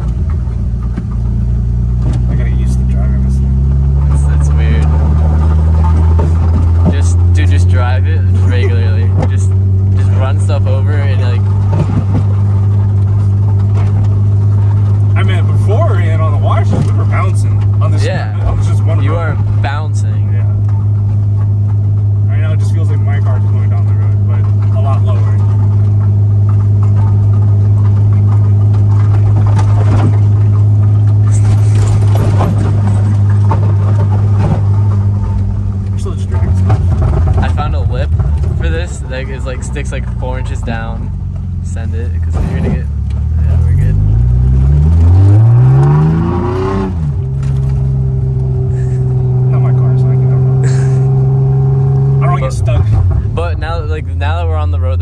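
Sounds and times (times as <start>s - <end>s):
car engine and road drone: 0.0s - 55.0s.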